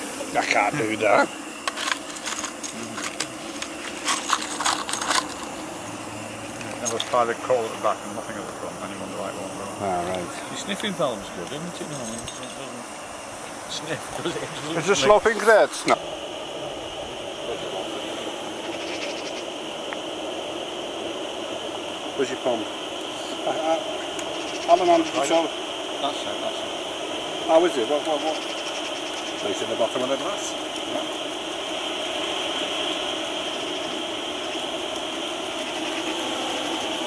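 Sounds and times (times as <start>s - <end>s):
steam hissing: 0.0s - 37.0s.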